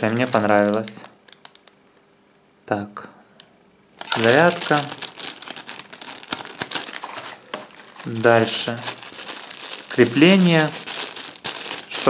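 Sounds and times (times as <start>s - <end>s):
plastic bags crinkling: 0.0s - 1.7s, 4.0s - 12.0s.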